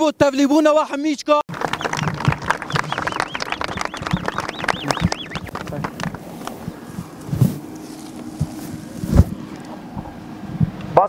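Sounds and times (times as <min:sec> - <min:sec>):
wind buffeting microphone: 0:01.5 - 0:11.0.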